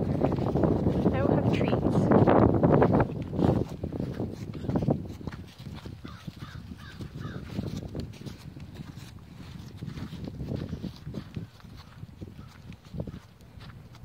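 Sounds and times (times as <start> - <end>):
footsteps on dry grass: 0.0 - 14.0
hoofsteps on dry grass: 0.0 - 14.0
crow cawing: 6.0 - 7.5.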